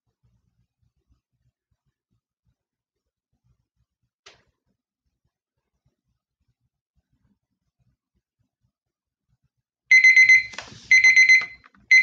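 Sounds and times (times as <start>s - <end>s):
timer alarm beeping: 9.9s - 12.0s.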